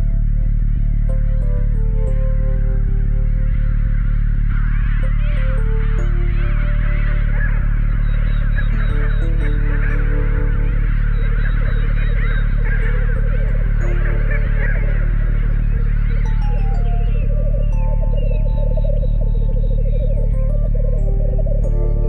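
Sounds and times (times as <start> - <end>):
chill-out electronic music: 0.0 - 22.0
chorus of animal calls: 6.7 - 22.0.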